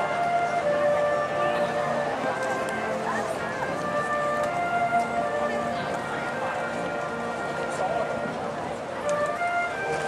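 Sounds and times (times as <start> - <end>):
concert band sustained chords: 0.0 - 10.0
people talking: 0.0 - 10.0.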